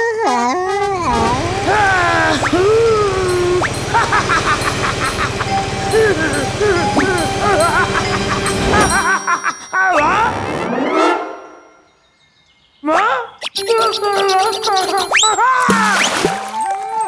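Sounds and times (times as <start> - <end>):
cartoon character laughing: 0.0 - 10.4, 12.9 - 15.8
low rumble: 0.6 - 8.9.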